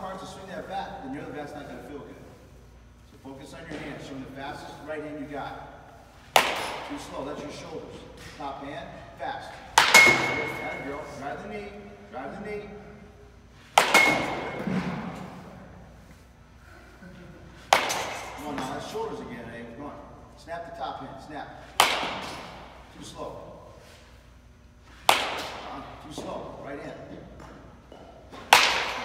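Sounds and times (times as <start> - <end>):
bat hitting ball: 6.3 - 7.2, 9.6 - 11.1, 13.7 - 15.3, 17.6 - 18.8, 21.6 - 22.8, 25.0 - 26.3, 27.4 - 29.0.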